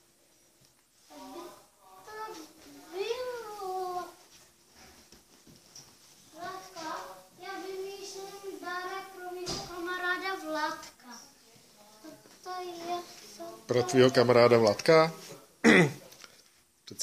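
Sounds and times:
child singing: 0:06.4 - 0:11.2.

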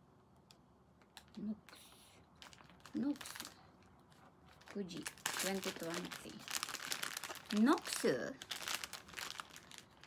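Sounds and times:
foil packaging crinkling: 0:01.1 - 0:10.0.

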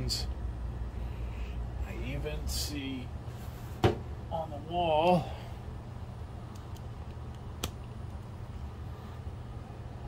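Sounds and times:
projector fans humming and whirring: 0:00.0 - 0:10.0.

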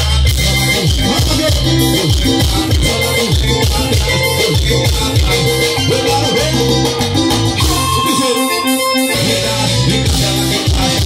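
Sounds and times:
live band instrumental music: 0:00.0 - 0:11.0.

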